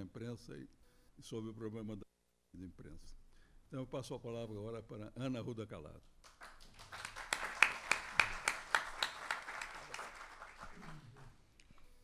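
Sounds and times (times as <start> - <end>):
audience applauding: 6.2 - 11.4.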